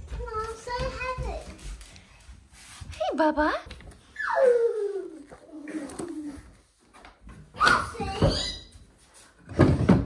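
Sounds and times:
child whining: 0:04.2 - 0:06.5.

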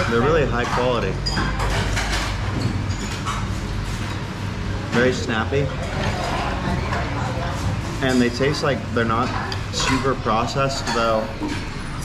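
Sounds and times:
murmur of voices: 0:04.4 - 0:12.0.

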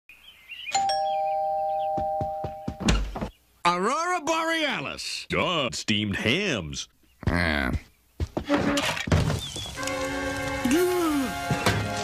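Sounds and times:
two-tone doorbell chime: 0:00.8 - 0:02.8.

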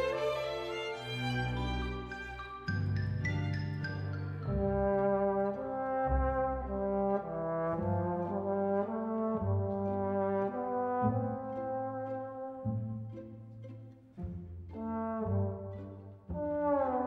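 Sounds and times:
string orchestra: 0:00.0 - 0:17.0
trombone melody: 0:04.6 - 0:13.0, 0:14.8 - 0:17.0.

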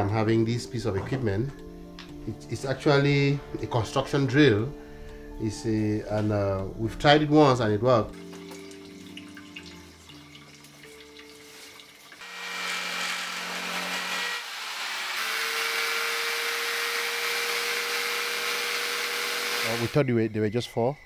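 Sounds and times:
soft background music: 0:00.0 - 0:12.2
drill whirring: 0:12.2 - 0:20.0.

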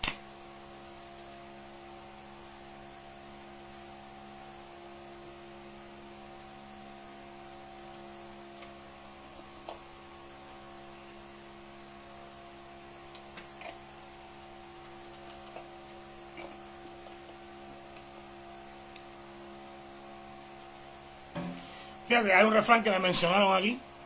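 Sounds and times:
electrical hum: 0:00.0 - 0:24.0.

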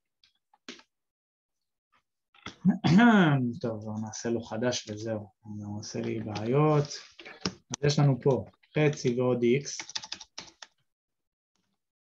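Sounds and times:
keyboard typing: 0:07.2 - 0:10.8.

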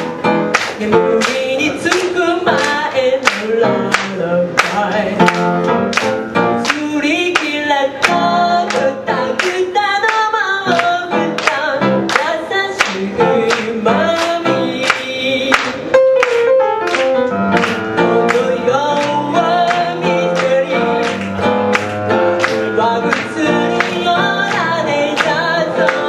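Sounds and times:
upright piano chords: 0:00.0 - 0:26.0
woman singing a pop song: 0:00.6 - 0:05.6, 0:06.5 - 0:15.9, 0:18.0 - 0:21.2, 0:22.4 - 0:26.0.

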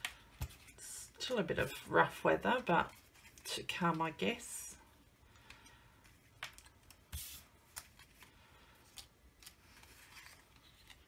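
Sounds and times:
paper rustling: 0:06.4 - 0:11.0.

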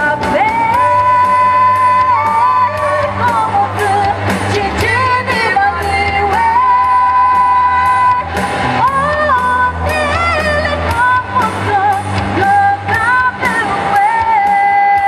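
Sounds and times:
loud backing music: 0:00.0 - 0:15.0
woman singing rock song: 0:00.0 - 0:15.0.

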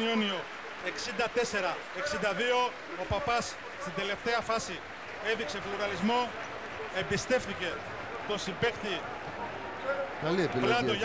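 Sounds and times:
male sports commentator speaking: 0:00.0 - 0:09.1, 0:09.8 - 0:11.0.

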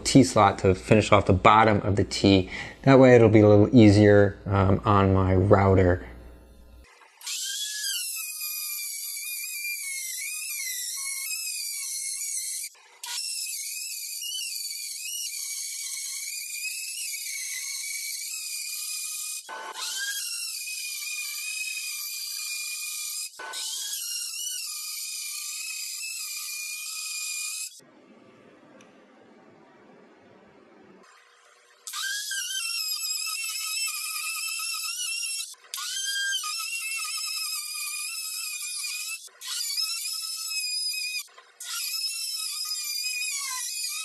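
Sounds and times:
router whining cutting wood: 0:05.6 - 0:27.8, 0:31.1 - 0:44.0.

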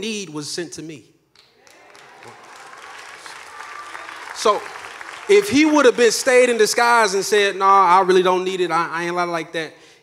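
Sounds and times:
congregation applauding: 0:01.4 - 0:07.4.

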